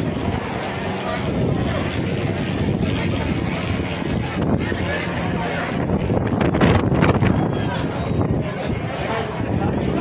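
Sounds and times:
crowd chattering: 0.0s - 10.0s
low engine rumble: 0.0s - 10.0s
wind buffeting microphone: 0.0s - 10.0s.

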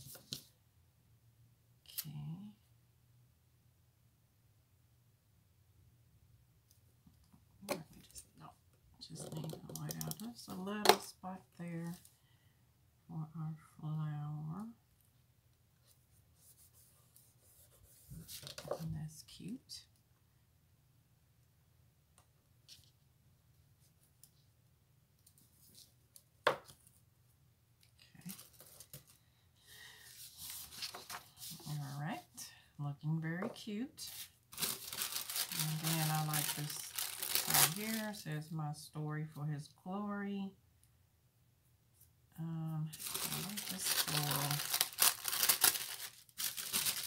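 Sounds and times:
person speaking: 7.6s - 12.1s, 30.5s - 40.6s, 42.4s - 47.0s
paper and plastic sheet rustling: 34.1s - 38.2s, 42.9s - 47.0s.

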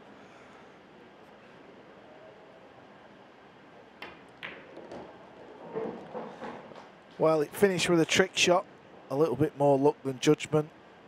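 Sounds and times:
quiet hall ambience: 0.0s - 11.0s
ball knocking into pocket: 4.0s - 5.1s
pool cue striking ball: 4.0s - 6.9s.

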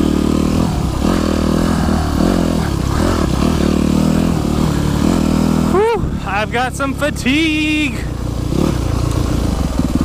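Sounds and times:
dirt bike engine revving: 0.0s - 10.0s.

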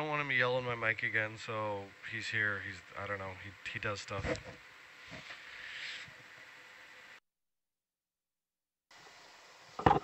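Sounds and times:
man speaking: 0.0s - 4.3s
faint intercom line hiss: 0.0s - 6.2s.

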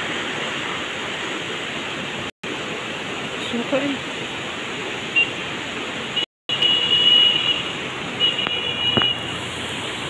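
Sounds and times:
river floodwater rushing: 0.0s - 10.0s.

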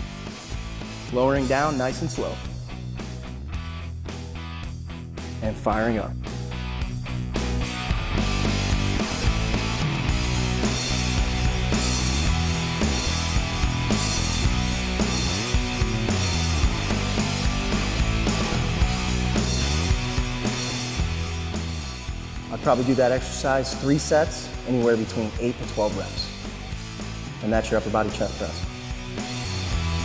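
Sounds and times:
rock music with steady beat: 0.0s - 30.0s.

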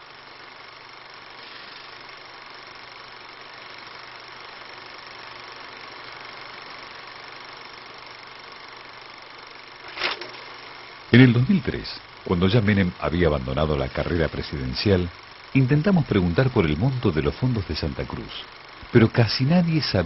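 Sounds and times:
background hiss: 0.0s - 20.0s
faint low hum: 0.0s - 20.0s.

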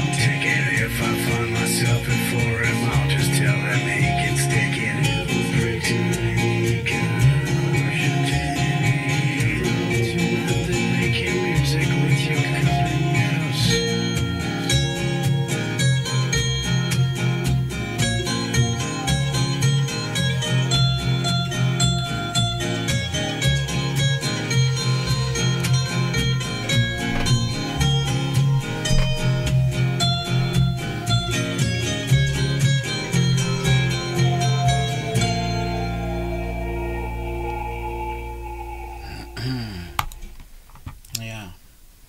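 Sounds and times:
song with strummed acoustic guitar: 0.0s - 40.8s.

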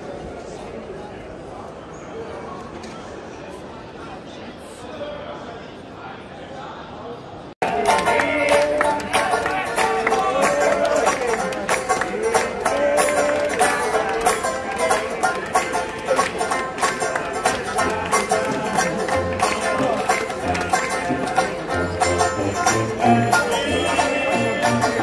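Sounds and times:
strummed banjo beat: 7.6s - 25.0s
jazz band playing: 17.9s - 25.0s.

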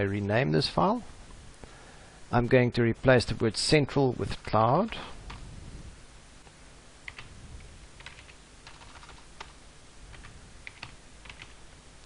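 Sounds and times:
keyboard keystrokes: 8.0s - 11.6s.

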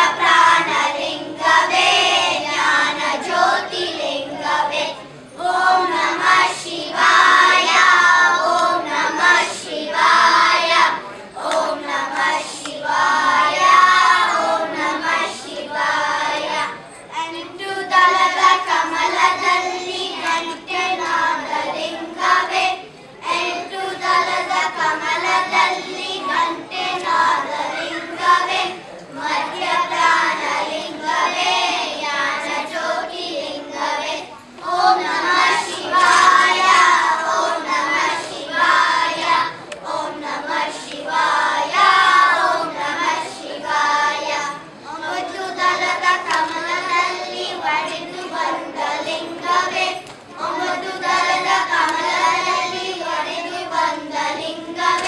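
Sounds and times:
children singing in unison: 0.0s - 55.0s.

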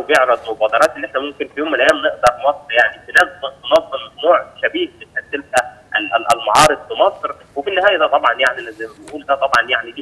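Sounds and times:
voice over telephone line: 0.0s - 10.0s.

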